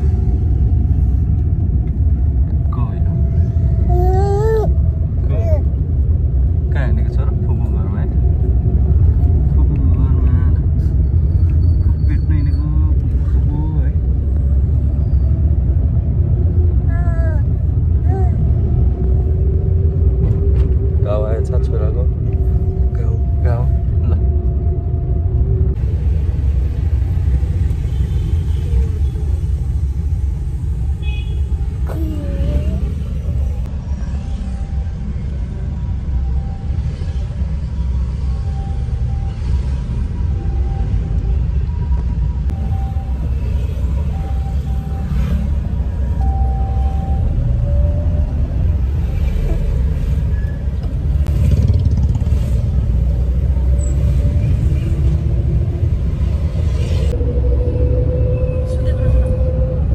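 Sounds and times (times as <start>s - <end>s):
car driving low rumble: 0.0s - 59.9s.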